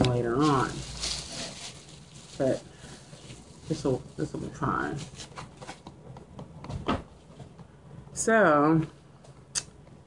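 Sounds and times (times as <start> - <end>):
hands rubbing and brushing: 0.0 - 5.8.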